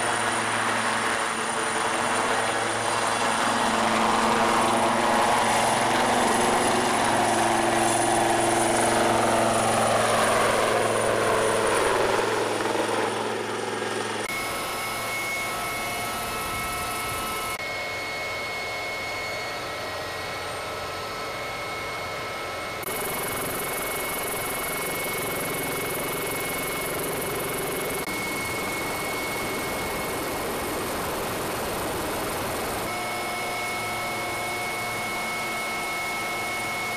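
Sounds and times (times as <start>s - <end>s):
helicopter flying past: 0.0s - 17.6s, 19.4s - 36.9s
helicopter turbine whine and rotor: 0.0s - 36.9s.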